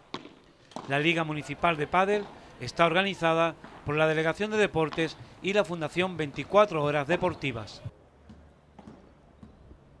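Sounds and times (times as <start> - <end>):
ball struck by rackets: 0.0 - 1.2, 2.0 - 2.4, 3.5 - 5.3, 6.0 - 7.3, 8.2 - 9.6.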